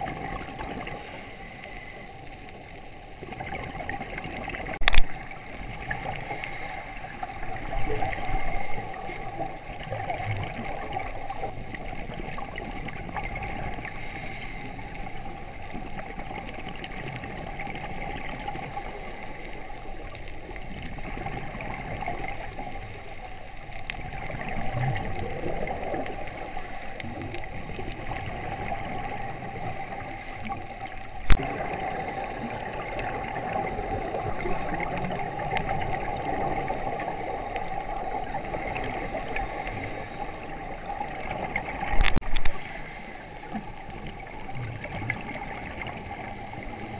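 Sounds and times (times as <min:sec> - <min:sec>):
bubbles gurgling: 0:00.0 - 0:01.2, 0:03.0 - 0:14.1, 0:14.7 - 0:42.6, 0:43.2 - 0:46.9
muffled underwater noise: 0:00.0 - 0:46.9.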